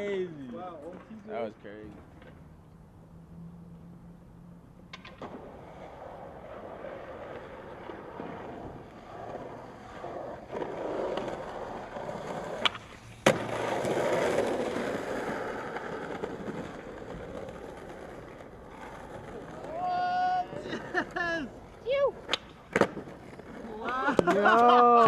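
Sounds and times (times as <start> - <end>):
skateboard wheels rolling on asphalt: 0.0 - 25.0
skateboard clacks: 4.8 - 25.0.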